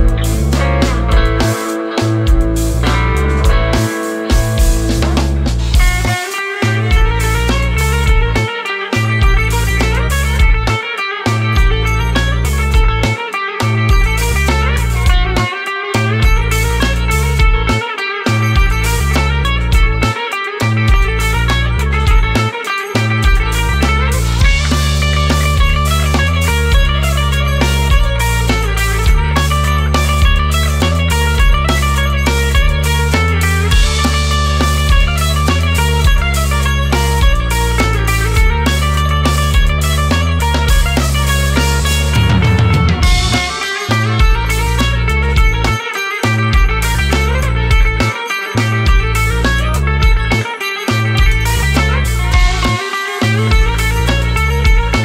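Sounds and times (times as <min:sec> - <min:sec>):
synth bass: 0:00.0 - 0:20.1, 0:20.7 - 0:22.4, 0:23.0 - 0:45.8, 0:46.4 - 0:50.4, 0:51.0 - 0:55.0
drums: 0:00.0 - 0:55.0
electric guitar riff: 0:00.0 - 0:55.0.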